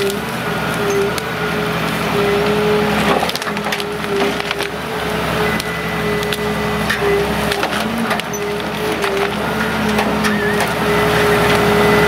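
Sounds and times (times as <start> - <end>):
branches crackling and snapping: 0.0 - 11.8
crane hydraulics: 0.0 - 12.0
diesel engine running: 0.0 - 12.0.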